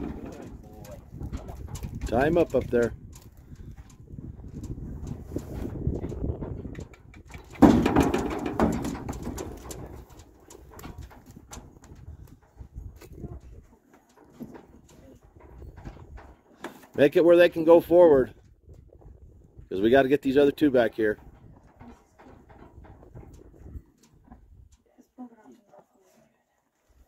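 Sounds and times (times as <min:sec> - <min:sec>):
hooves knocking against trailer: 0:00.0 - 0:24.7.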